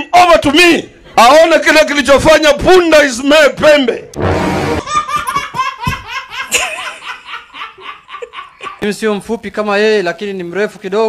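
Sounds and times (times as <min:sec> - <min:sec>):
toddler laughing: 0:04.8 - 0:08.8.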